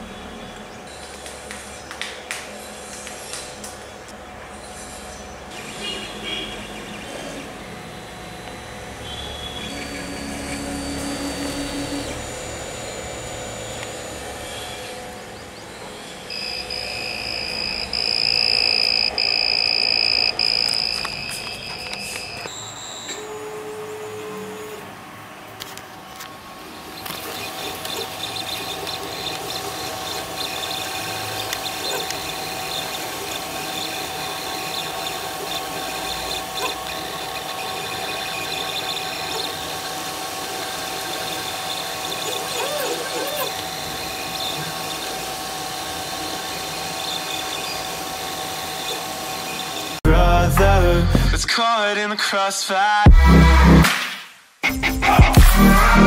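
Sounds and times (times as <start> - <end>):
printer motors and fans whining: 0.0 - 51.4
printer buzzer high beep: 5.6 - 6.9, 7.8 - 14.9, 16.0 - 24.8, 27.0 - 50.0.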